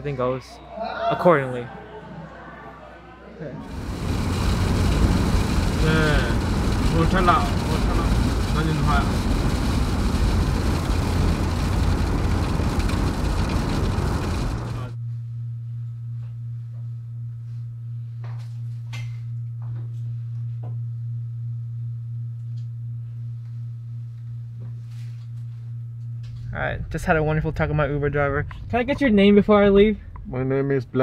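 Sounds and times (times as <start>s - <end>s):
car road noise: 3.6s - 15.0s
steady low hum: 3.6s - 31.0s.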